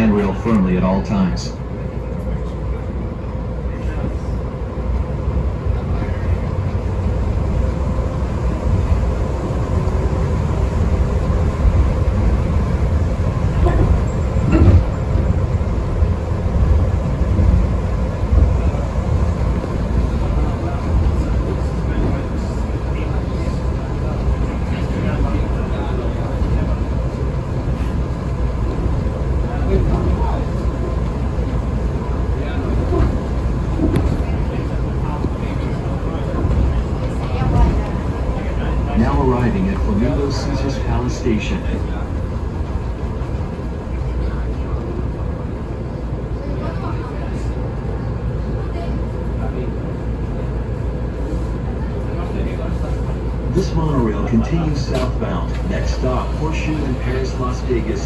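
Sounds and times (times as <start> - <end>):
train rumbling: 0.0 - 58.0
light bumps of train: 13.4 - 15.6, 32.4 - 38.8.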